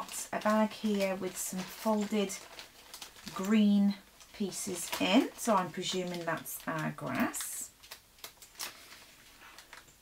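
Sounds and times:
plastic bag crinkling: 0:00.0 - 0:10.0.

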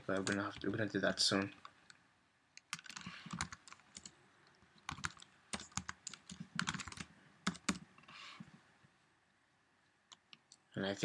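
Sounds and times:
keyboard typing clicks: 0:02.6 - 0:04.1, 0:04.8 - 0:07.8.

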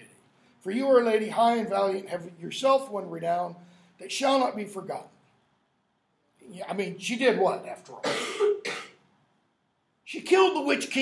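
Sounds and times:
man clearing his throat: 0:08.0 - 0:09.0
man coughing: 0:08.0 - 0:09.0.

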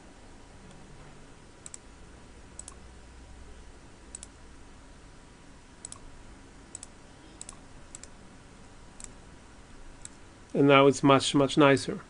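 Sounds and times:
computer mouse clicks: 0:01.6 - 0:01.8, 0:02.6 - 0:02.8, 0:04.1 - 0:04.4, 0:05.8 - 0:06.1, 0:06.7 - 0:08.1, 0:10.0 - 0:10.2.

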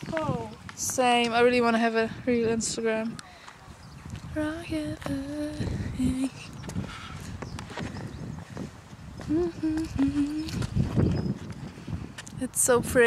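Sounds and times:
wind buffeting microphone: 0:00.0 - 0:13.0
woman humming: 0:04.4 - 0:06.4, 0:09.2 - 0:10.6.

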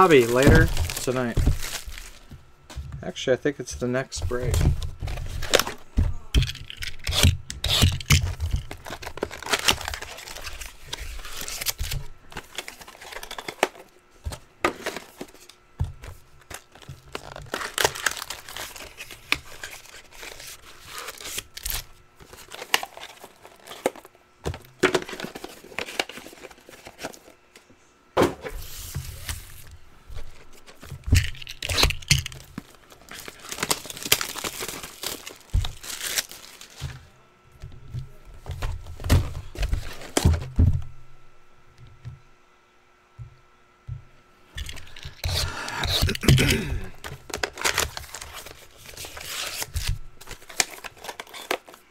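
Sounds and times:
cardboard box tearing: 0:00.0 - 0:02.2, 0:17.1 - 0:21.8
foil packs crinkling: 0:00.0 - 0:02.4, 0:03.6 - 0:13.9, 0:14.7 - 0:27.4, 0:28.6 - 0:37.1, 0:38.8 - 0:40.5, 0:44.6 - 0:51.9.

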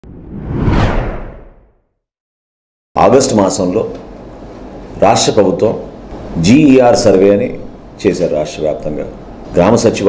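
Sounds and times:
logo whoosh sound effect: 0:00.0 - 0:01.8.

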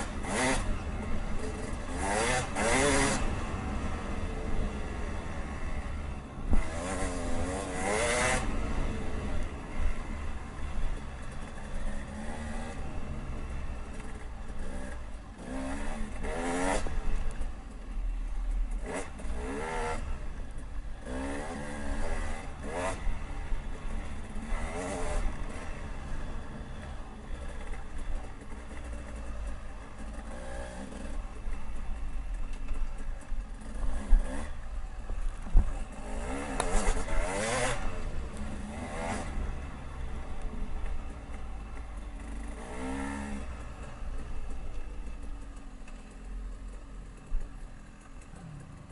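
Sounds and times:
dirt bike engine revving: 0:00.0 - 0:17.4, 0:18.8 - 0:20.3, 0:21.0 - 0:31.4, 0:35.4 - 0:41.6, 0:42.2 - 0:44.3.

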